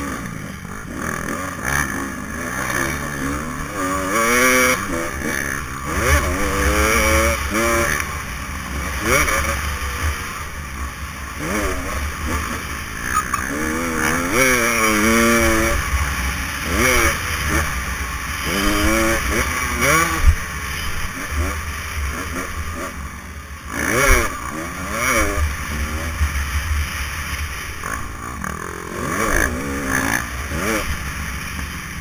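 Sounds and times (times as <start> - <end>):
dirt bike engine revving: 0.0 - 32.0.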